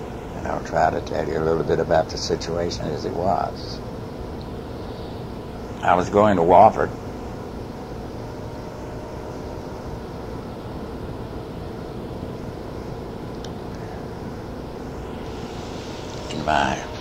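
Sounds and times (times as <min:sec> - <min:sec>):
cassette hiss and hum: 0:00.0 - 0:17.0.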